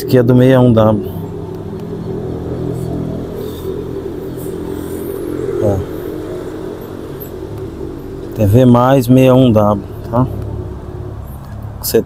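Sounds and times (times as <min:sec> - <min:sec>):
motor humming: 0:00.8 - 0:11.8.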